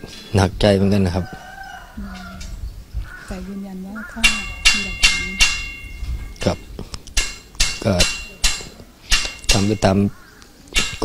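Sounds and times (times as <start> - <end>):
rooster crowing: 1.0 - 4.6
man speaking: 6.4 - 6.8, 7.8 - 8.2, 9.4 - 10.1.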